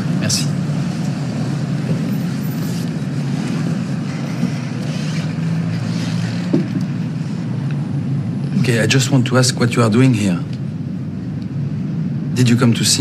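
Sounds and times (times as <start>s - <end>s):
city street traffic rumble: 0.0s - 13.0s.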